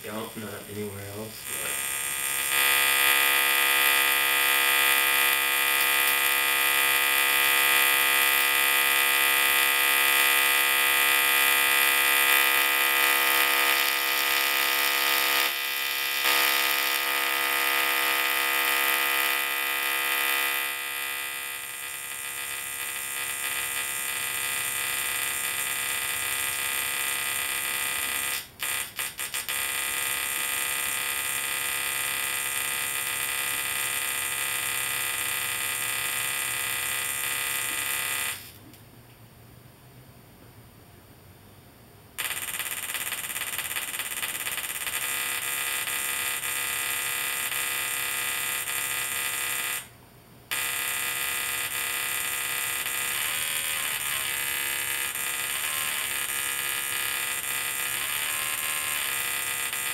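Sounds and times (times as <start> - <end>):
tesla coil buzzing: 0.0 - 38.6, 42.2 - 49.9, 50.5 - 59.9.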